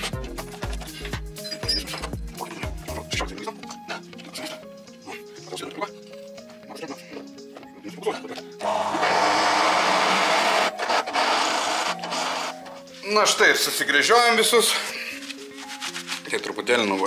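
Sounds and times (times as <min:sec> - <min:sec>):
background music: 0:00.0 - 0:17.0
drill press boring steel: 0:08.6 - 0:12.6.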